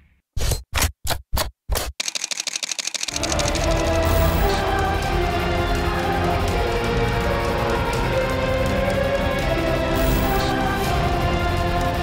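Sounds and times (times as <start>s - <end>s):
camera shutter clicks: 2.0s - 3.9s
intro music: 3.1s - 12.0s.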